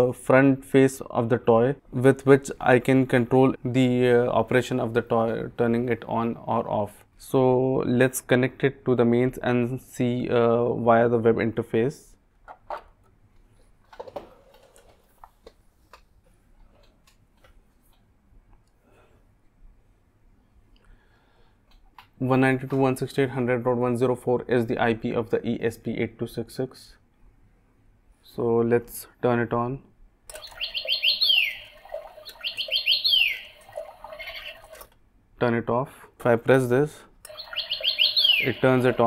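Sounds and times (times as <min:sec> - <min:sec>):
electronic bird chirps: 0:30.3 - 0:34.8, 0:37.3 - 0:39.0.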